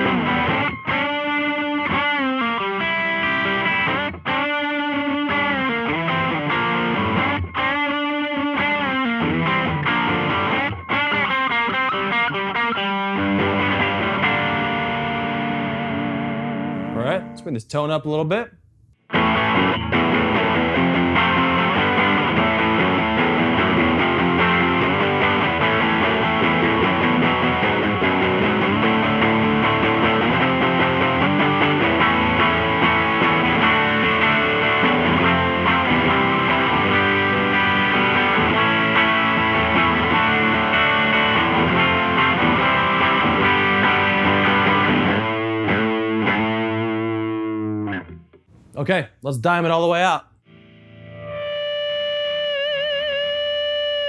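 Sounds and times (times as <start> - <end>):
overdriven electric guitar chords: 0.0 - 17.5, 19.0 - 48.5, 50.4 - 54.0.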